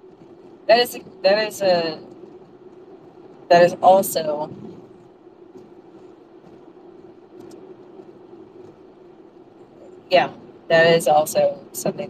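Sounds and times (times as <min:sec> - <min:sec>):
low microphone hum: 0:00.0 - 0:12.0.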